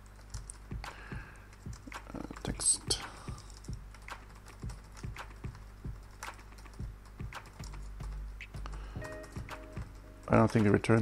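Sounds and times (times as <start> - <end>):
typing on computer keyboard: 0.0 - 11.0.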